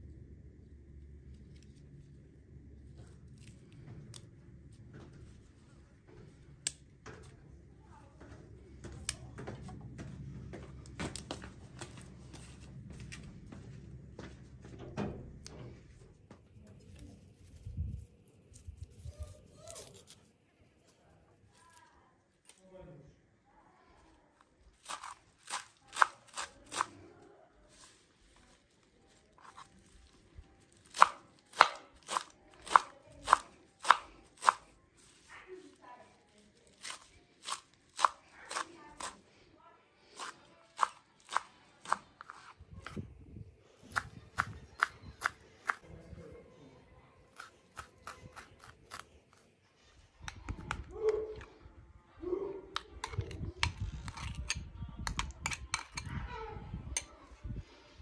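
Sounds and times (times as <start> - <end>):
low steady rumble: 0.0 - 6.6
knife chopping on wooden board: 30.8 - 34.7, 36.8 - 39.2.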